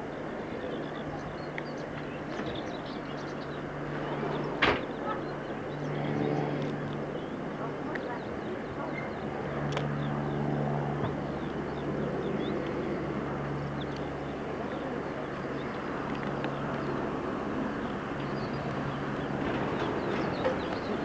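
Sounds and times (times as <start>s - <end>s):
train carriages running: 1.7s - 9.6s, 13.6s - 21.0s.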